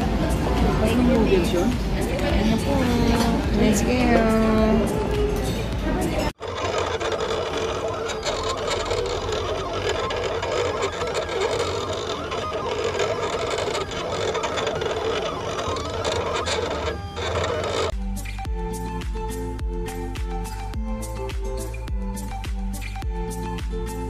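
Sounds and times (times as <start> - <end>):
cutting machine motors whirring: 6.1 - 18.0.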